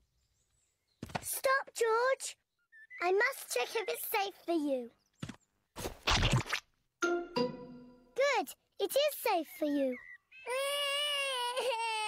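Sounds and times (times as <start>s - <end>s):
cartoon toddler crying: 10.4s - 12.0s.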